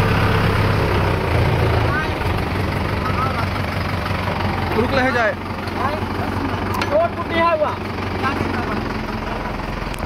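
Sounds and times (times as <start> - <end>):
tractor diesel engine running: 0.0 - 10.0.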